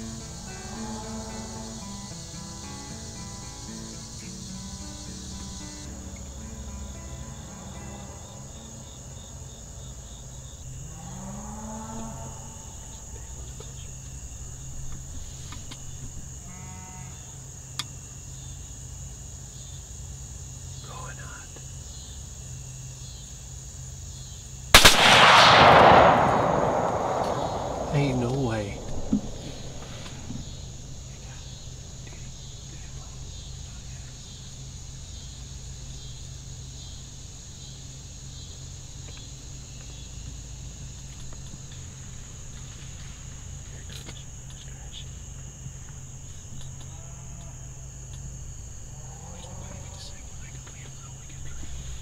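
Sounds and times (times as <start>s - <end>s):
insects chirring: 0.0s - 52.0s
gunshot with echo: 24.8s - 31.2s.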